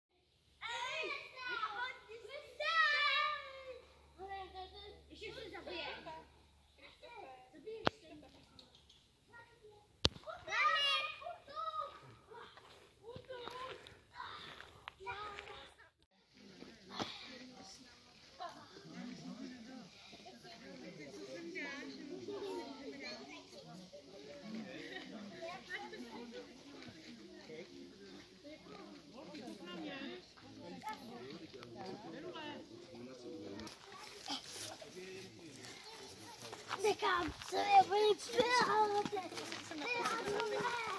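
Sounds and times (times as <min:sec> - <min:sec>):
children and people chattering: 0:00.2 - 0:40.9.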